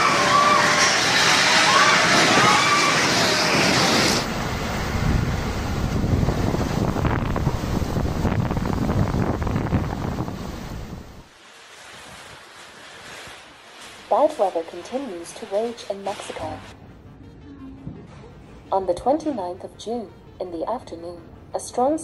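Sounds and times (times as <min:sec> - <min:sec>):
storm wind gusting: 0:00.0 - 0:11.3.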